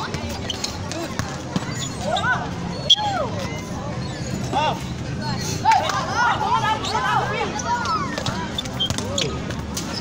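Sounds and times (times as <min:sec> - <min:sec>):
ball thuds on concrete court: 0:00.9 - 0:01.7.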